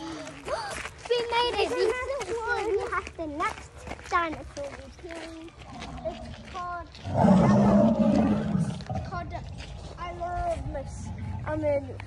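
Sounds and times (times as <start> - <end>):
animatronic dinosaur roar: 7.0 - 9.4, 10.8 - 11.7.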